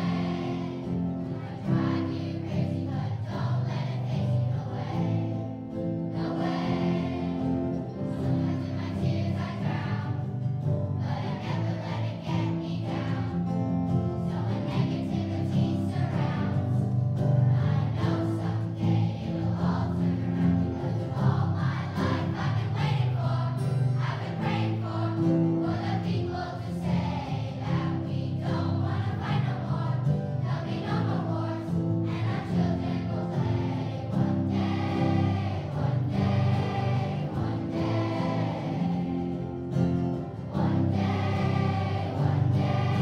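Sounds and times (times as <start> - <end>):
acoustic guitar: 0.0 - 43.0
children's choir singing: 0.0 - 43.0.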